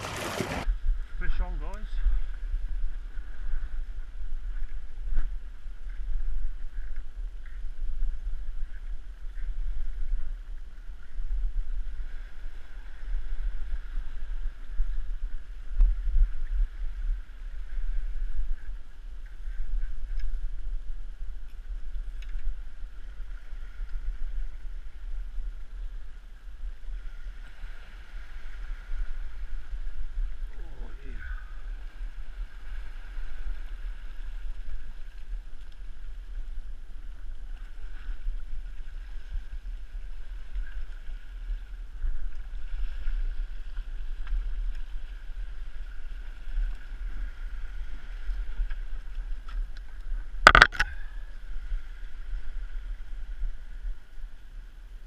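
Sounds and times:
sea washing against rocks: 0:00.0 - 0:18.7
wind rumbling on microphone: 0:00.0 - 0:55.0.

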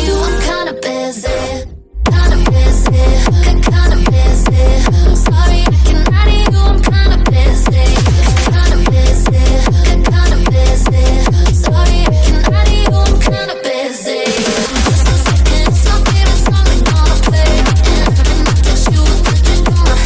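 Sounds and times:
techno kick drum beat: 0:02.1 - 0:13.5, 0:14.4 - 0:20.0
synth notes: 0:11.5 - 0:20.0.

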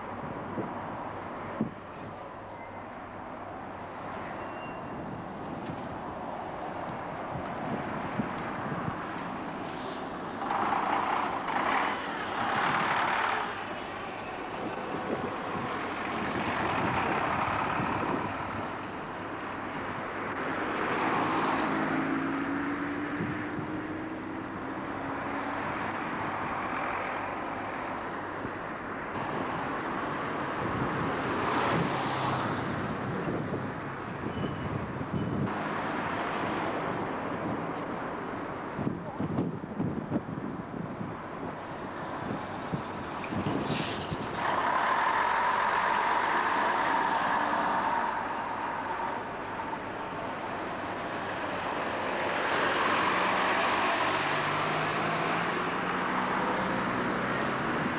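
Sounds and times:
diesel bus engines in traffic: 0:00.0 - 0:57.9.

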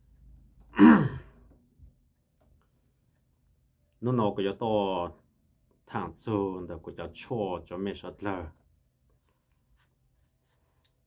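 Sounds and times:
man sighing: 0:00.7 - 0:01.5.

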